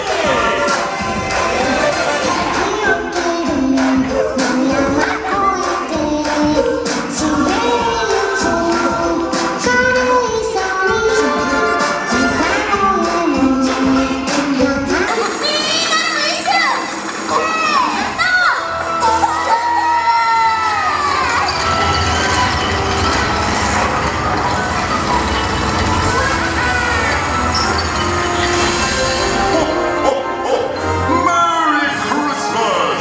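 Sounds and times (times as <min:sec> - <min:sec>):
amplified voices speaking and singing: 0:00.0 - 0:23.9, 0:29.7 - 0:33.0
crowd of children and adults: 0:00.0 - 0:33.0
stage-show music over loudspeakers: 0:00.0 - 0:33.0.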